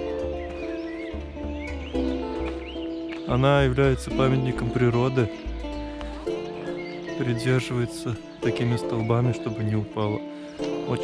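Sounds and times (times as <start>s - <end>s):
low steady bass line: 0.0s - 8.3s.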